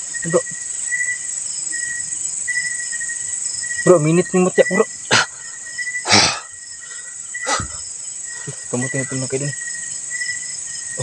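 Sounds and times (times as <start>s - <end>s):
crickets and insects buzzing: 0.0s - 11.0s
insect trill pulsing: 0.0s - 11.0s.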